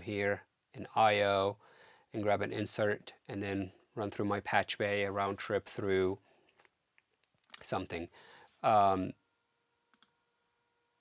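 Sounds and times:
computer mouse clicks: 9.9s - 10.2s.

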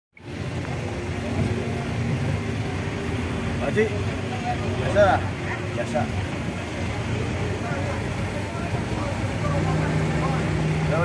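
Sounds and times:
vehicle engine and road noise: 0.2s - 11.0s.

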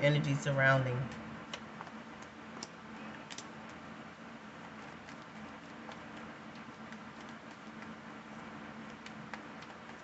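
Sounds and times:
cards clicking: 1.1s - 3.8s.

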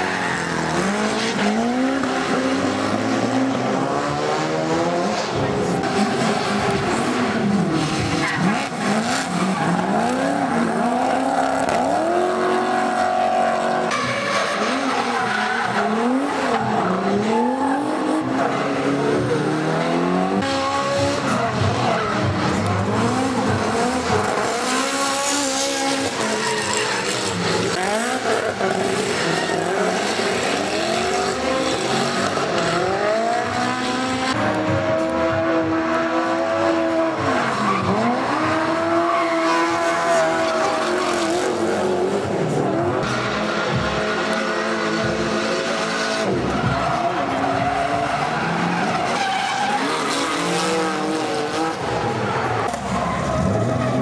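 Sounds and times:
car engines revving hard: 0.0s - 54.0s
tyre squeal: 25.7s - 27.8s.

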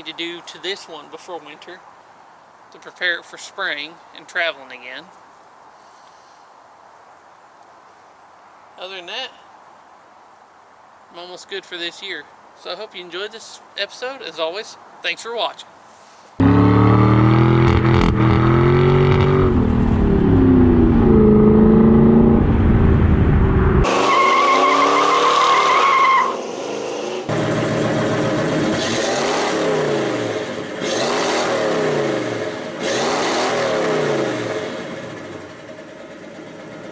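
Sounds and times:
car engine revving: 16.4s - 35.6s
tire squeal: 23.8s - 27.3s.

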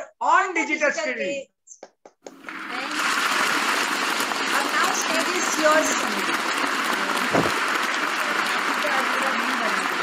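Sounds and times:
people clapping: 1.8s - 10.0s.

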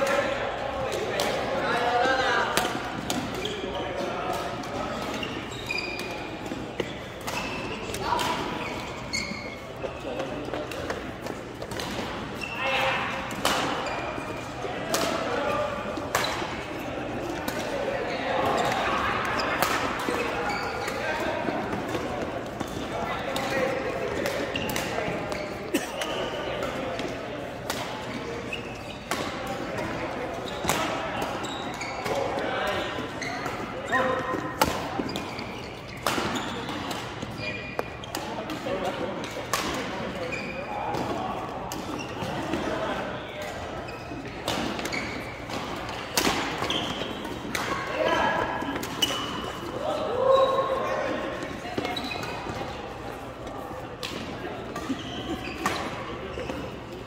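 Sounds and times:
players' voices: 0.0s - 57.0s.

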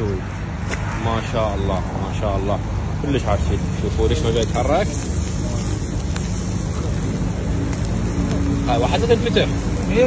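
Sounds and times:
fish sizzling on embers: 0.0s - 10.0s.

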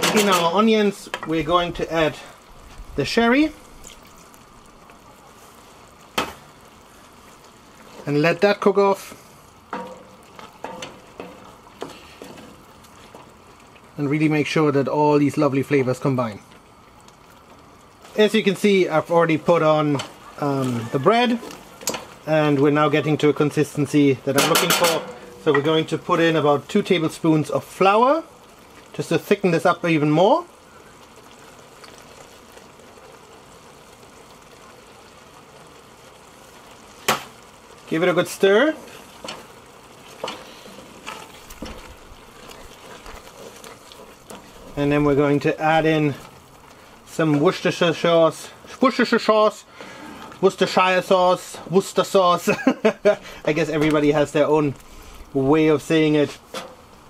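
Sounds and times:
liquid sizzling on hot onions: 0.0s - 57.0s.

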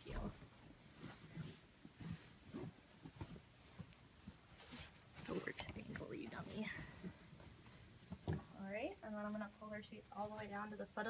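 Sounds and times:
bed sheets rustling: 0.0s - 11.0s.

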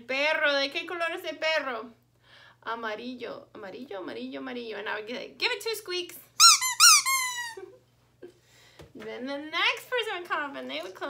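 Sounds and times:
rubber squeaky toy squeak: 6.4s - 7.7s.

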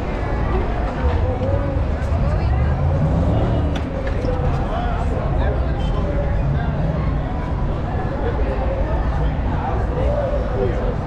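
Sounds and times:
low rumble of street traffic: 0.0s - 11.0s
passersby chattering: 0.0s - 11.0s.

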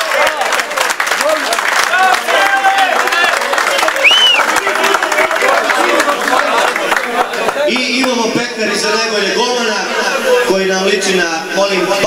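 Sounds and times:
people clapping and applauding: 0.0s - 8.6s.

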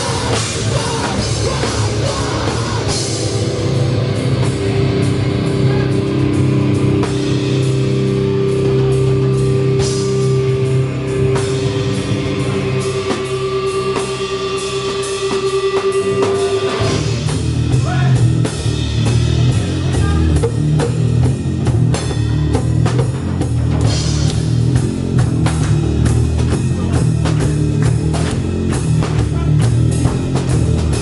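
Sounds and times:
heavy rock band playing: 0.0s - 31.0s.

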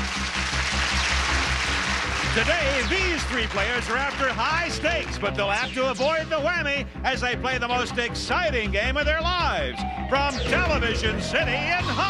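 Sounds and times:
game show theme music: 0.0s - 12.0s.

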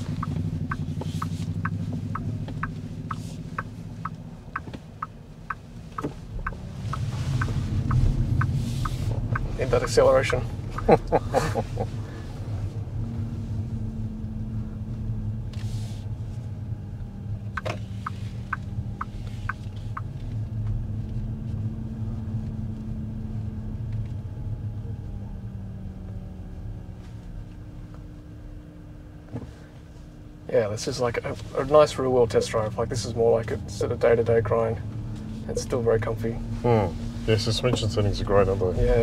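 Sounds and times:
road and tyre rumble in car: 0.0s - 39.0s.

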